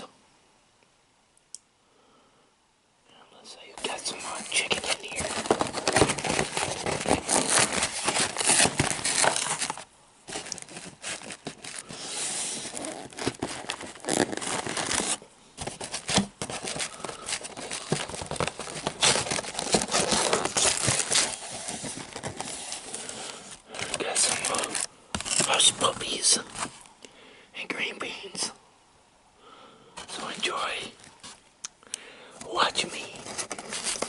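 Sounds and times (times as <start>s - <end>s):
paper crinkling and tearing: 3.8s - 26.8s, 30.0s - 31.4s, 32.5s - 34.0s.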